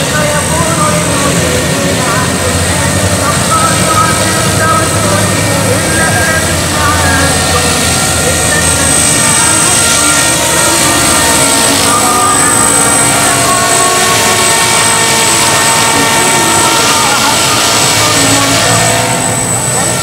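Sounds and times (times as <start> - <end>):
helicopter motor whine and rotor hum: 0.0 - 20.0.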